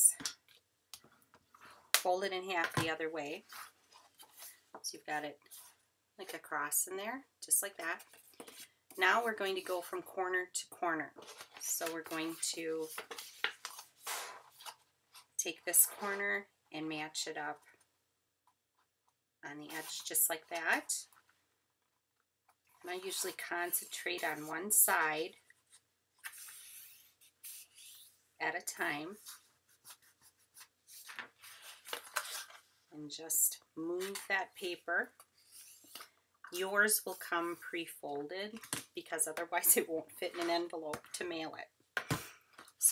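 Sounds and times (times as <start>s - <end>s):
cardstock rustling and crackling: 11.2s - 15.3s.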